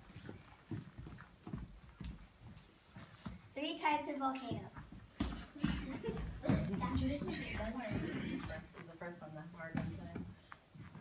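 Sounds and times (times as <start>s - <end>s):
soft footsteps on floor: 0.0s - 11.0s.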